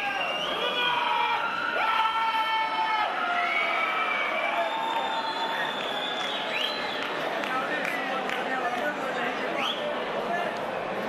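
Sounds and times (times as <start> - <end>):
crowd cheering and shouting: 0.0 - 8.1.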